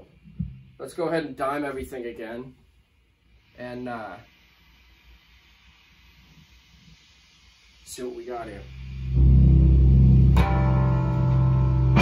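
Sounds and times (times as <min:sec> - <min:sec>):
guitar amplifier hum and hiss: 0:00.0 - 0:12.0.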